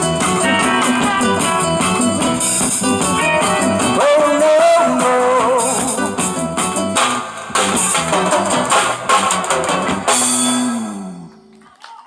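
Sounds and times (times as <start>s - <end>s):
live band playing: 0.0s - 11.9s.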